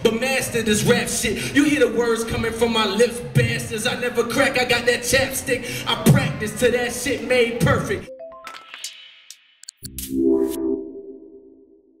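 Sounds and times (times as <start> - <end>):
sustained synth chord: 9.9 - 12.0.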